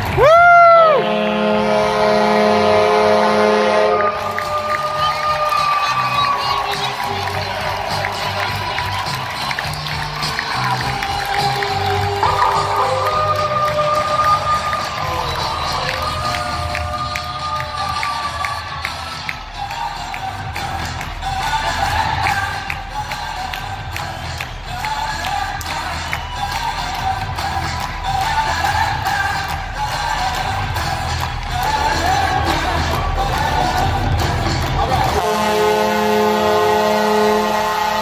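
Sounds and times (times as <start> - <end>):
crowd cheering: 0.0 - 38.0
crowd noise: 0.0 - 38.0
music over arena sound system: 0.0 - 38.0.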